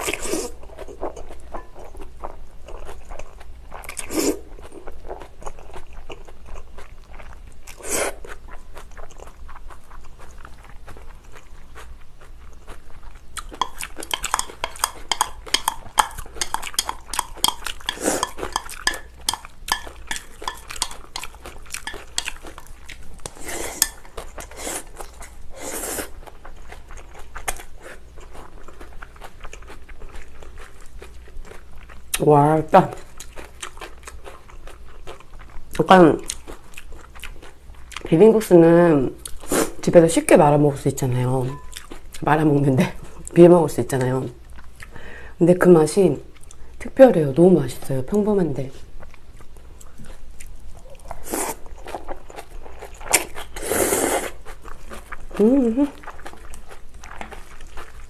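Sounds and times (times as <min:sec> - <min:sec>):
crunchy wet chewing: 0:00.0 - 0:32.2, 0:33.0 - 0:38.1, 0:41.4 - 0:42.3, 0:48.9 - 0:58.0
chopsticks on a glass bowl: 0:13.6 - 0:22.6, 0:23.2 - 0:24.1, 0:41.5 - 0:41.8
noodles being slurped: 0:13.6 - 0:26.2, 0:53.0 - 0:54.4.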